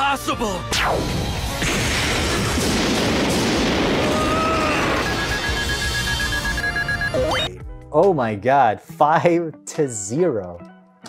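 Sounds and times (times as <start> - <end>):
explosion rumble: 1.2 - 6.0
rapid short high beeps: 5.0 - 7.5.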